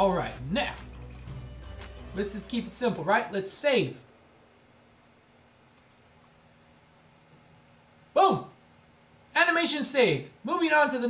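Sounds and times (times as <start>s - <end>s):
computer mouse click: 5.7s - 6.0s.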